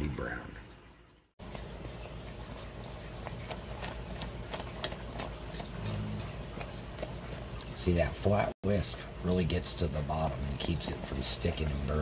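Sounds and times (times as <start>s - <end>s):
syrup boiling with popping bubbles: 1.3s - 12.0s
whisk stirring in pan: 1.4s - 8.0s.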